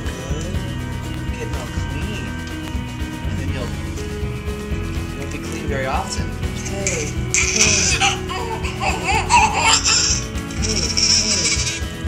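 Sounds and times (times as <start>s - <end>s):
background music: 0.0s - 12.0s
newborn baby crying: 6.9s - 11.8s.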